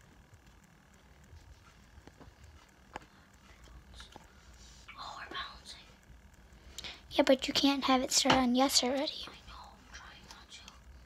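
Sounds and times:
girl whispering: 0:04.9 - 0:06.0, 0:08.8 - 0:10.8.

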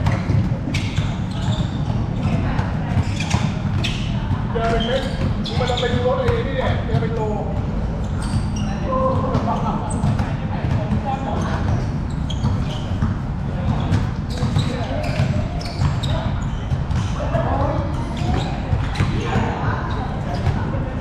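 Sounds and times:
basketball bouncing on hard court: 0:00.0 - 0:20.8.

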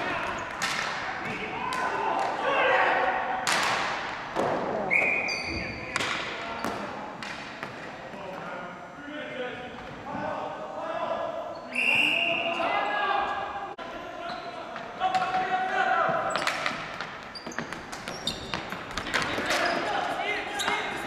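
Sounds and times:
players shouting: 0:00.0 - 0:03.6
sticks and ball on hardwood floor: 0:00.5 - 0:02.3, 0:16.1 - 0:19.8
sneakers squeaking: 0:04.8 - 0:07.9, 0:14.2 - 0:15.2, 0:16.1 - 0:21.0
referee's whistle: 0:04.9 - 0:05.8, 0:11.6 - 0:12.7.

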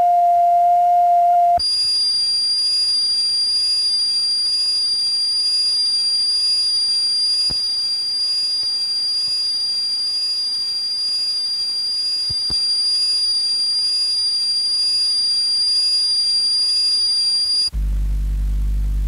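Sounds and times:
faint click: 0:12.2 - 0:12.7.

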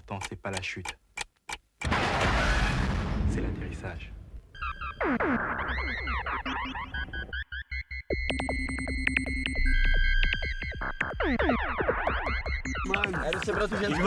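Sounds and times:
sharp clicks: 0:00.0 - 0:01.9
high beeping tones: 0:04.6 - 0:14.0
synthesizer sweeps: 0:04.6 - 0:14.0.

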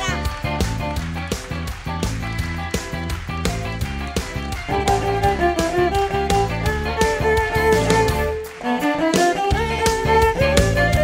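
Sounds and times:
bowed cello melody: 0:04.7 - 0:11.0.

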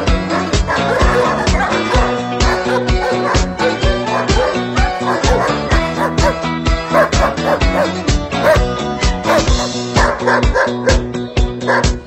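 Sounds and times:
dogs barking: 0:00.0 - 0:12.0.

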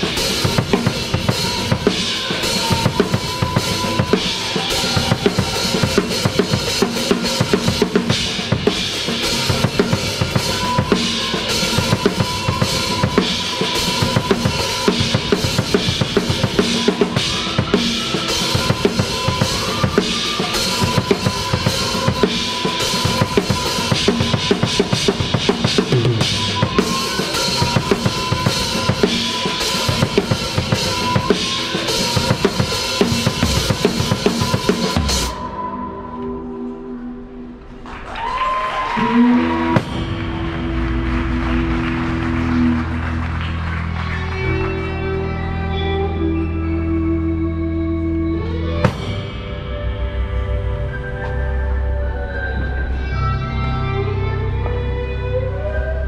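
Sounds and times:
acoustic drum kit beat: 0:00.0 - 0:35.4
band instruments: 0:00.0 - 0:56.0.

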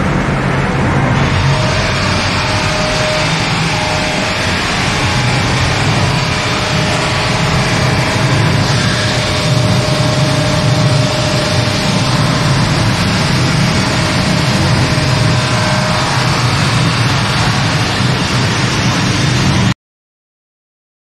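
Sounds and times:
loud steady machine drone: 0:00.0 - 0:19.8
thin steady whine: 0:00.0 - 0:19.8.

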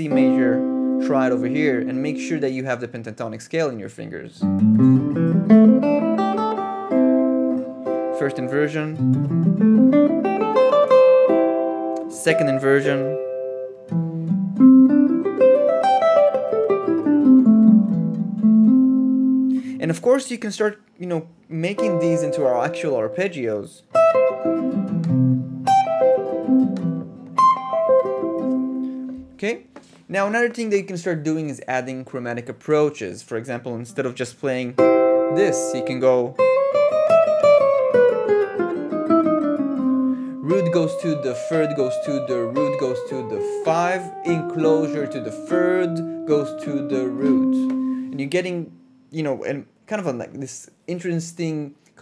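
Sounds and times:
electric guitar single-note line: 0:00.0 - 0:02.4, 0:04.4 - 0:19.7, 0:21.8 - 0:23.2, 0:23.9 - 0:29.4, 0:34.8 - 0:49.1.

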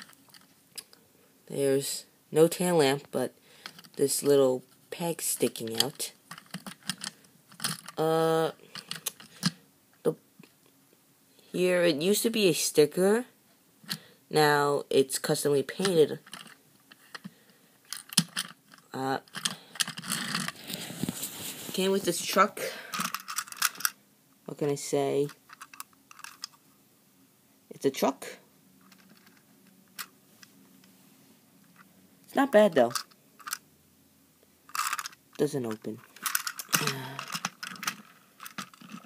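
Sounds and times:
plastic toy train clicking and rattling: 0:00.0 - 0:00.5, 0:05.2 - 0:09.6, 0:15.8 - 0:17.3, 0:17.9 - 0:20.7, 0:22.9 - 0:24.0, 0:25.2 - 0:26.6, 0:28.8 - 0:29.4, 0:32.7 - 0:33.6, 0:34.7 - 0:39.0.

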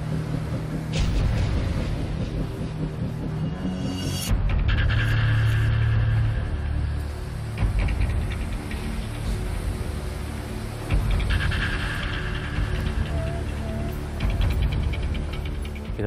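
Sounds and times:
low bass drone: 0:00.0 - 0:16.0.

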